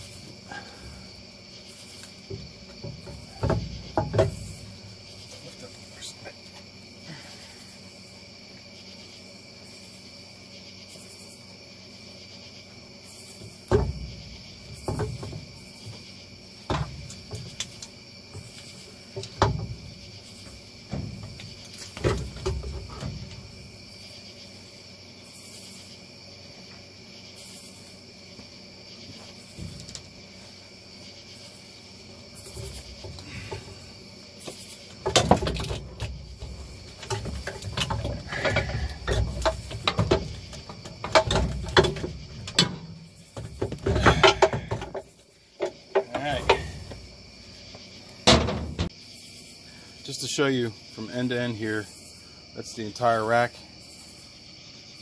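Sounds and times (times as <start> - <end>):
metal knocks and clunks: 0.0 - 6.7, 13.3 - 24.0, 29.1 - 30.8, 32.0 - 49.0.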